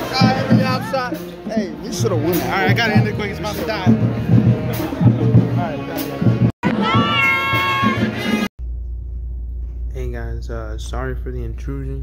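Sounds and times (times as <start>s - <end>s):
music with a beat: 0.0s - 8.5s
girl's excited squeal: 6.8s - 8.0s
low steady hum: 8.6s - 12.0s.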